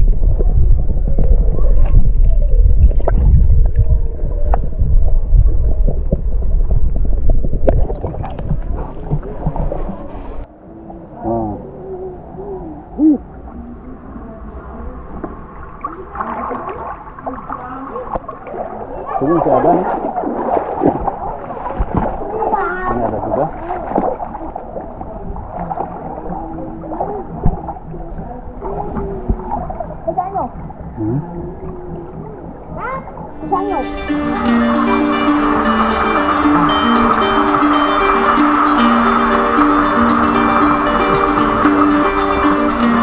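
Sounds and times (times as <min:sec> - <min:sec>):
muffled underwater water movement: 0:00.0 - 0:43.0
stream gurgling over rocks: 0:33.3 - 0:43.0
hooting tones: 0:33.4 - 0:43.0.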